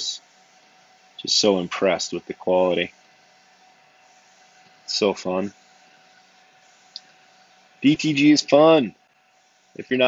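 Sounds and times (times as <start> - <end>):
printer mechanical hum: 0.0 - 10.0.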